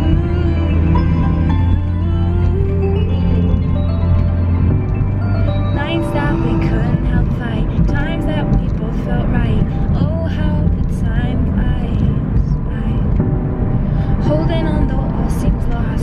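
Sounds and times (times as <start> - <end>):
road noise rumble in car: 0.0 - 16.0
woman singing unaccompanied: 5.8 - 13.2, 14.1 - 16.0.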